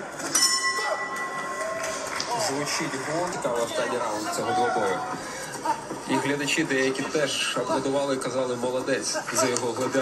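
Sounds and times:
boxing ring bell ringing: 0.3s - 1.8s.

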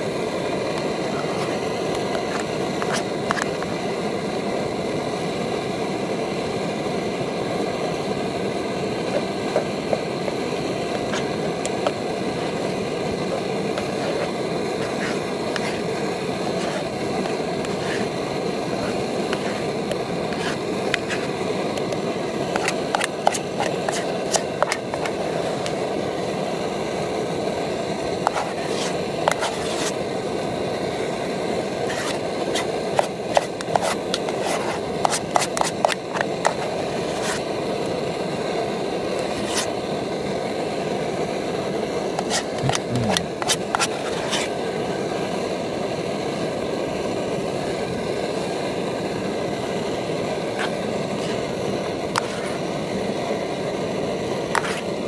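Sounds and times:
utensils scraping metal pot: 11.0s - 25.7s, 28.2s - 30.0s, 31.8s - 37.5s, 39.2s - 39.8s, 42.2s - 44.6s.

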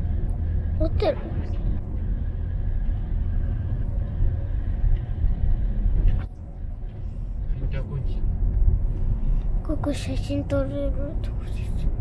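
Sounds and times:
road and engine rumble inside car: 0.0s - 12.0s.

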